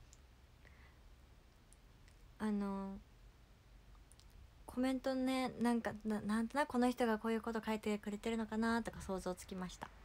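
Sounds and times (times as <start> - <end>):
faint tiny clicks: 0.0 - 0.8, 3.9 - 4.4.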